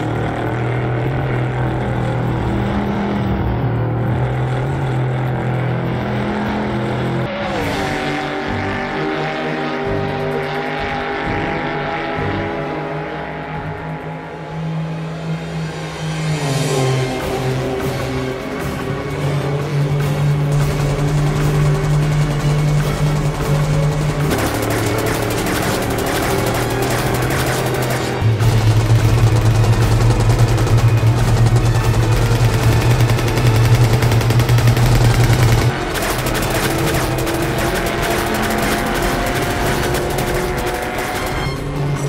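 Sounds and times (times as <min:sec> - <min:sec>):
dramatic music: 0:00.0 - 0:42.0
vehicle engine: 0:00.0 - 0:42.0
rapid automatic gunfire: 0:20.0 - 0:41.6.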